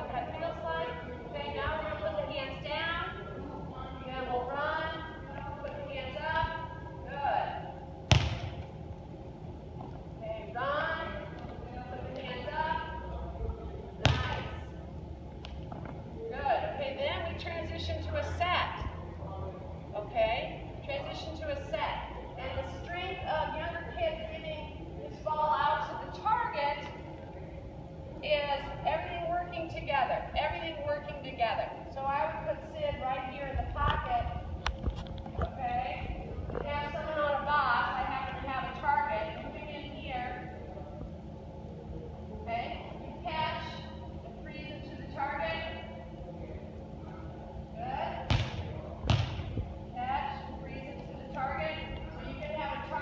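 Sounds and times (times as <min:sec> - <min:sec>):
volleyball smacks: 0:08.1 - 0:08.6, 0:14.0 - 0:14.5, 0:48.3 - 0:49.6.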